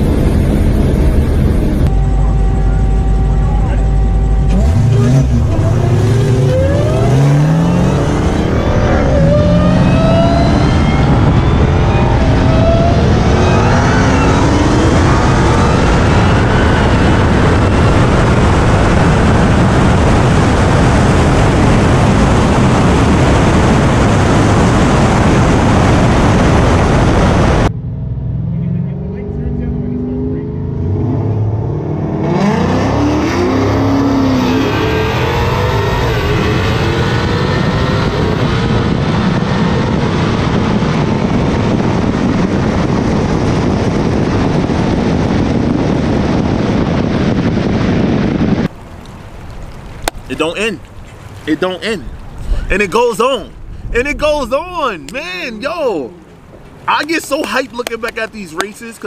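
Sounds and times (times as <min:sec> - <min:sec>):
heavy wind rush: 0:00.0 - 0:28.3, 0:30.6 - 0:59.0
car engines at full throttle: 0:00.0 - 0:59.0.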